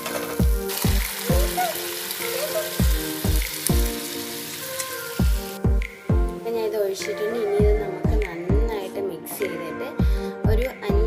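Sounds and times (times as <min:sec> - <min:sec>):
background music with steady beat: 0:00.0 - 0:11.0
food sizzling in a pan: 0:00.2 - 0:05.6.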